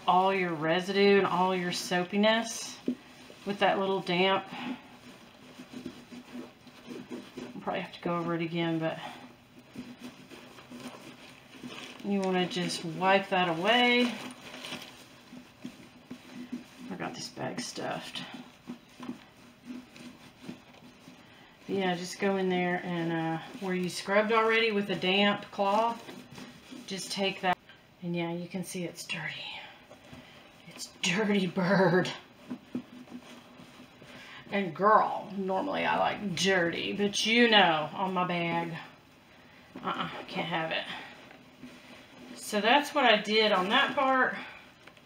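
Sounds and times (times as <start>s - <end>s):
cloth rubbing on leather: 0.0s - 27.6s, 29.0s - 45.0s.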